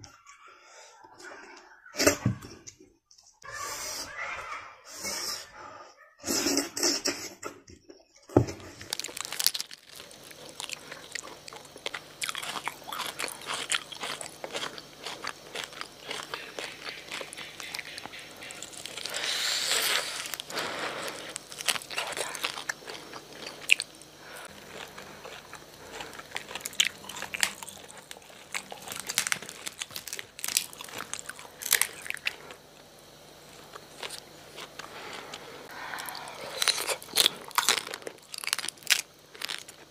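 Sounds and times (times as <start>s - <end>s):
meat being bitten and chewed: 8.8s - 39.9s.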